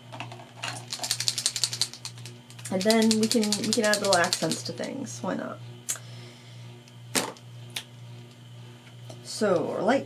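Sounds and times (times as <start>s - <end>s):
steady low hum: 0.0s - 10.0s
plastic pens clicking on mat: 0.9s - 4.6s.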